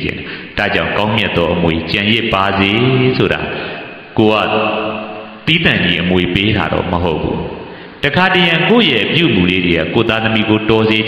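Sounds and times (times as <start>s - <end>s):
man preaching in sing-song voice: 0.0s - 11.0s.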